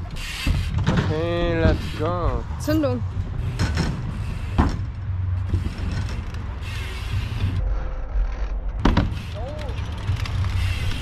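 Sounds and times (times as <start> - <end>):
bicycle tyres rolling on concrete: 0.0 - 11.0.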